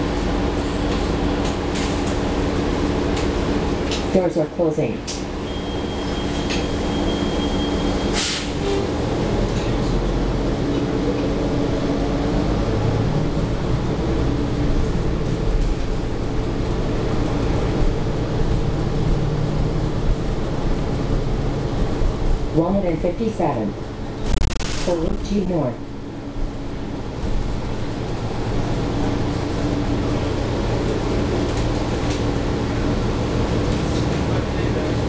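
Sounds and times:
bus engine running: 0:00.0 - 0:35.0
road noise: 0:00.0 - 0:35.0.

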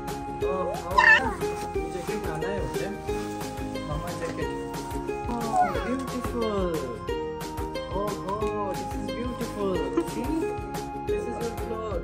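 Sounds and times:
background music with steady beat: 0:00.0 - 0:12.0
toddler squealing: 0:00.9 - 0:01.5, 0:05.4 - 0:06.0
toddler vocal sounds: 0:01.0 - 0:01.6, 0:05.4 - 0:06.1.

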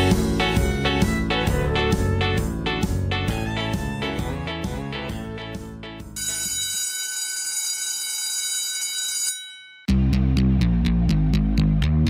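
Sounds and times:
guitar music: 0:00.0 - 0:06.2
high steady ringing tone: 0:06.2 - 0:09.9
loud music with heavy bass: 0:09.9 - 0:12.0.

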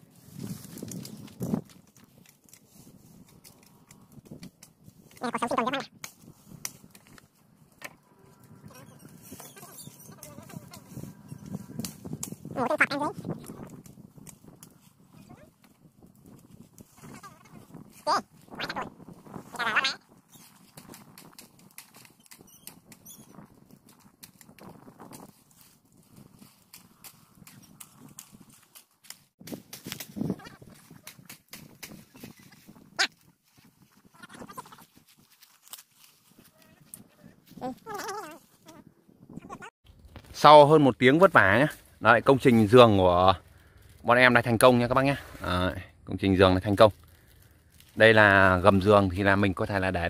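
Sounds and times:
leaves rustling: 0:00.0 - 0:38.8, 0:39.9 - 0:50.0
short pitched calls: 0:19.5 - 0:20.4.

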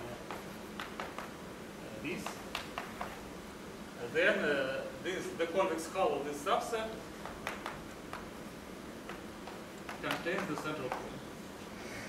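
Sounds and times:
chalk tapping on a blackboard: 0:00.2 - 0:01.4, 0:02.1 - 0:03.3, 0:07.2 - 0:08.4, 0:09.0 - 0:11.1.

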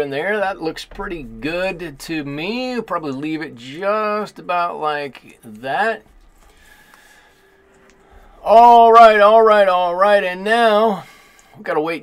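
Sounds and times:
faint low rumble: 0:00.0 - 0:11.6.

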